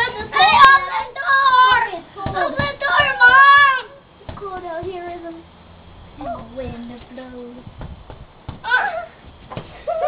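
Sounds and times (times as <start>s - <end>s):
young child yelling sing-song: 0.0s - 4.0s.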